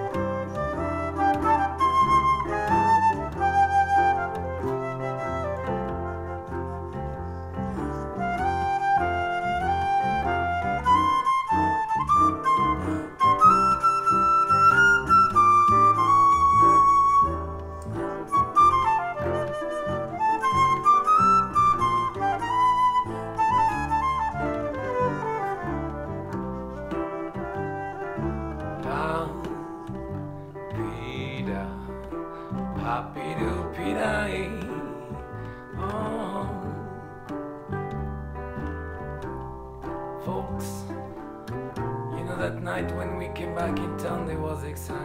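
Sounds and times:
flute melody: 0:00.0 - 0:45.0
ukulele bass line: 0:00.0 - 0:45.0.

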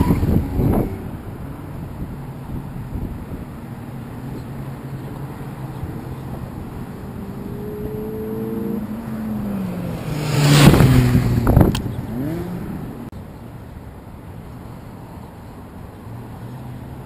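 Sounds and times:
car passing close by: 0:04.0 - 0:13.1
car engine revving: 0:04.3 - 0:13.1.

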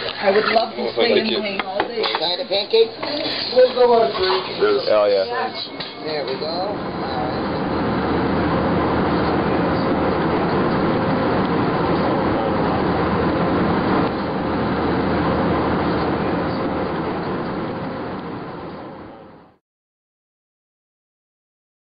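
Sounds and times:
moving vehicle rumbling: 0:06.7 - 0:19.4.

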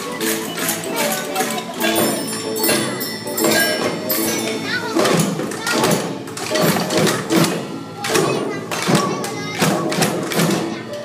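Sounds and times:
hand percussion steady beat: 0:00.0 - 0:11.0
young children's voices: 0:00.0 - 0:11.0.

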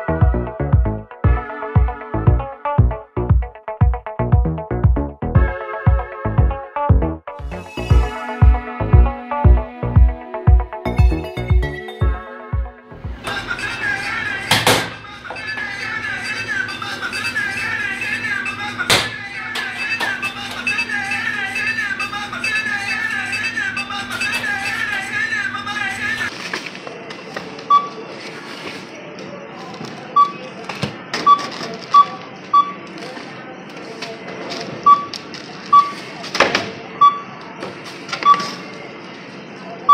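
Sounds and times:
background music: 0:00.0 - 0:26.3
barcode scanner beeping: 0:27.7 - 0:28.0, 0:30.2 - 0:30.5, 0:31.2 - 0:32.9, 0:34.8 - 0:36.0, 0:37.0 - 0:37.4, 0:38.2 - 0:38.6.

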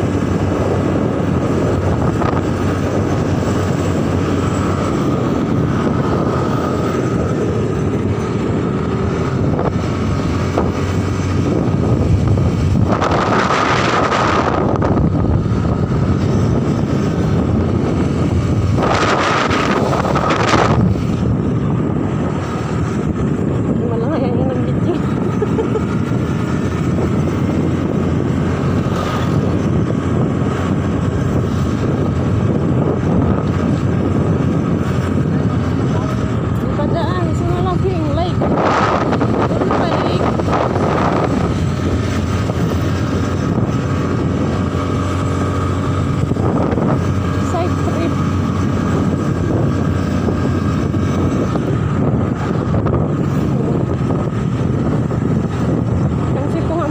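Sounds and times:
motorcycle engine running: 0:00.0 - 0:56.9
wind noise on microphone: 0:00.0 - 0:56.9.

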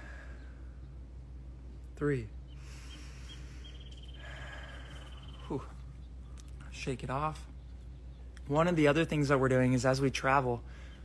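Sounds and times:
man breathing out: 0:00.0 - 0:00.8, 0:02.6 - 0:05.8.

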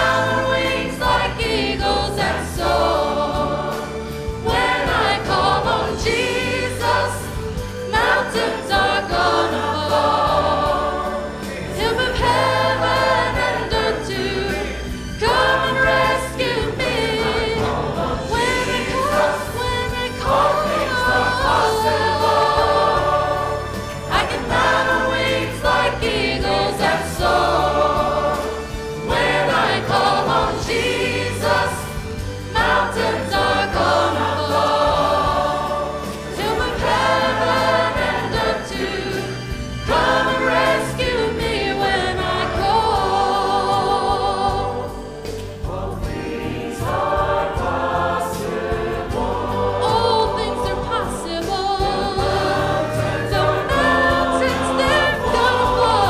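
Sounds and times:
choir singing: 0:00.0 - 0:56.0
instrumental accompaniment with bass: 0:00.0 - 0:56.0.

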